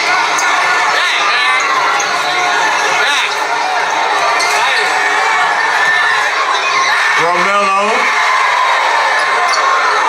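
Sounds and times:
crowd talking and shouting: 0.0 - 10.0.

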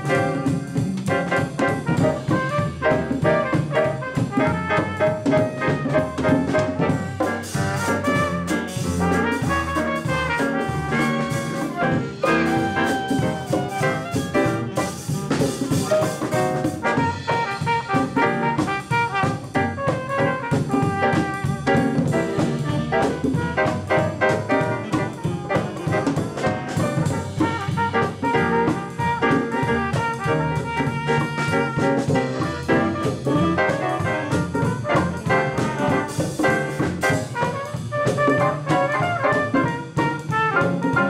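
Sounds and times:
jazz big band playing: 0.0 - 41.0
cymbals: 6.5 - 19.4.

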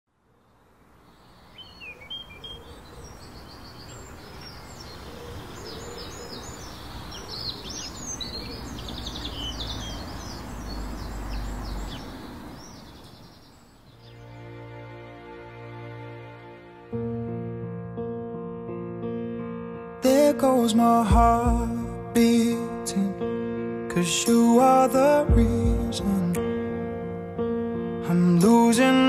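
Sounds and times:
steady outdoor hiss: 0.1 - 17.8
small birds chirping and trilling: 0.2 - 14.6.

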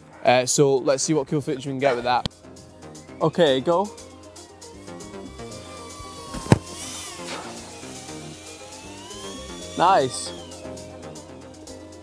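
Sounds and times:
background music: 0.0 - 12.0
drone motors whining: 2.5 - 12.0
sharp thump: 6.3 - 7.5.

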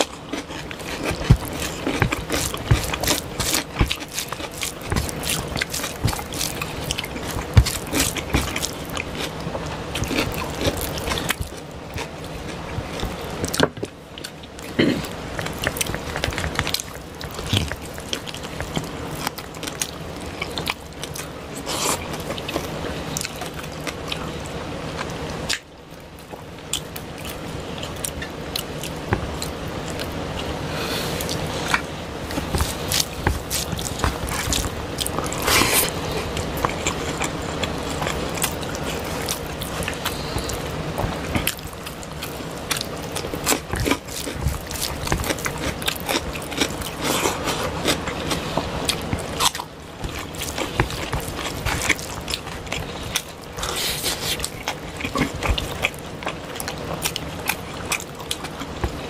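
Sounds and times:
fingers mixing wet rice: 0.0 - 13.6
chewing food: 0.0 - 30.6, 31.2 - 59.0.

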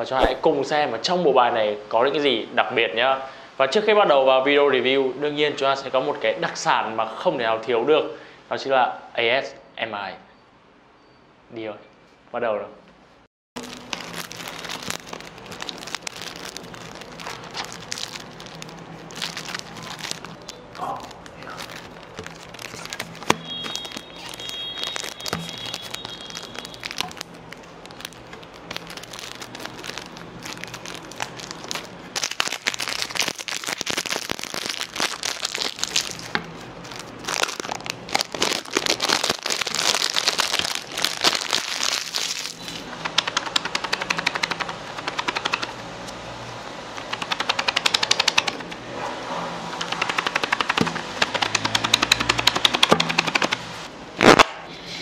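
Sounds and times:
cellophane wrapper crinkling: 13.6 - 45.6, 49.9 - 53.6
fingers tapping card box: 43.0 - 45.7, 47.0 - 48.6, 49.8 - 53.6
playing cards clicking: 43.0 - 45.8, 47.0 - 48.7, 49.8 - 53.6.

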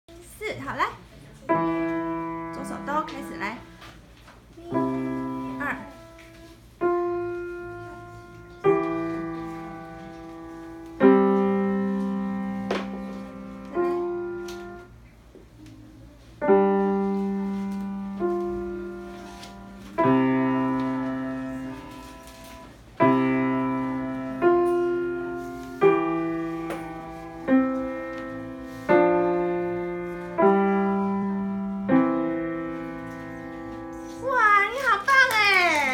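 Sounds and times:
slow piano notes and chords: 1.4 - 4.0, 4.6 - 34.5.

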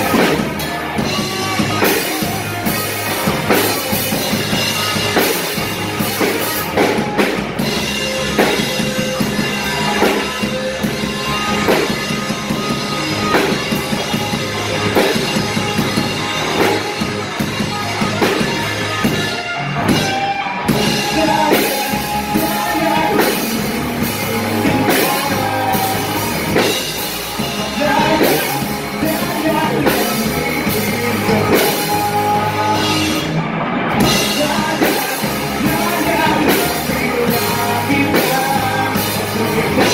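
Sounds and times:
drum kit crashing: 0.0 - 39.9
live rock band playing: 0.0 - 39.9.

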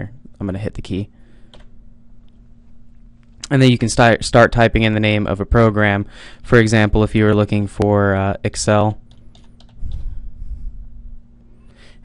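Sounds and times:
computer keyboard typing: 9.1 - 10.0.

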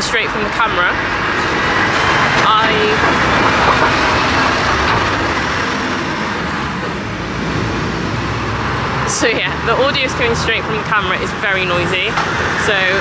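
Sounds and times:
lorry engine and tyres: 0.0 - 13.0
road traffic: 0.0 - 13.0.

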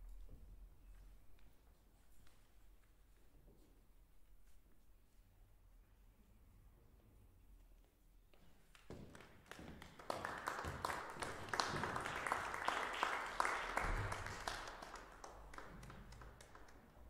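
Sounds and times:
audience applauding: 9.1 - 17.0.

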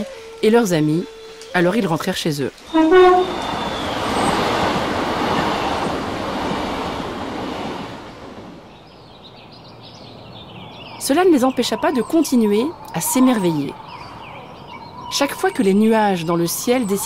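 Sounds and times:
moving train rumbling: 0.2 - 17.0
train whistle toot: 2.7 - 4.4.

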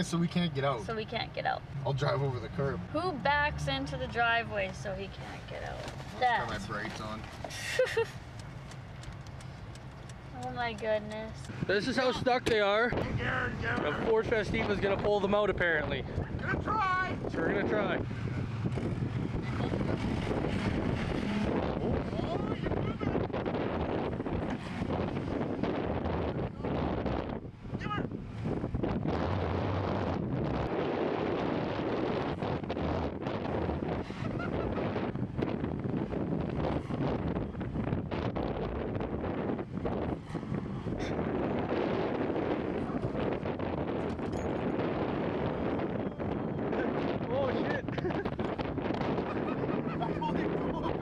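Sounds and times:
car engines revving: 0.0 - 51.0
wind buffeting microphone: 0.0 - 51.0.

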